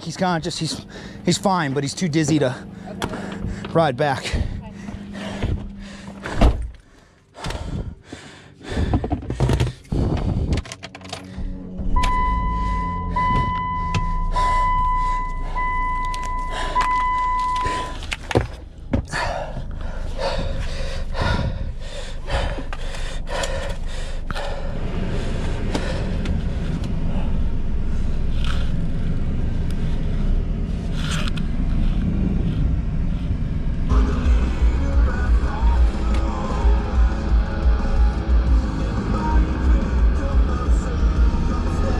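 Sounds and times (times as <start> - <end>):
car door and seat thunks: 4.4 - 6.8, 13.2 - 14.3
car warning chime beeping: 11.8 - 18.0
background music with beat: 33.9 - 41.9.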